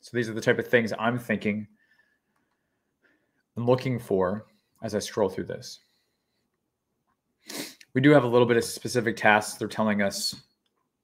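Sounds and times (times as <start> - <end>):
man speaking: 0.0 - 1.8, 3.6 - 5.9, 7.5 - 10.6
man taking sharp breath: 7.4 - 7.8.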